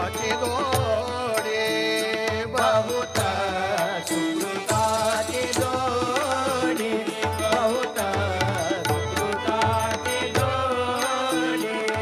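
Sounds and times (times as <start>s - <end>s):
percussion beat: 0.0s - 12.0s
person singing through microphones: 0.0s - 12.0s.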